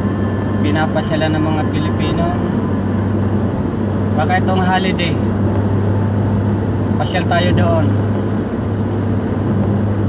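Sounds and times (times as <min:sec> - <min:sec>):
car cabin road drone: 0:00.0 - 0:10.0.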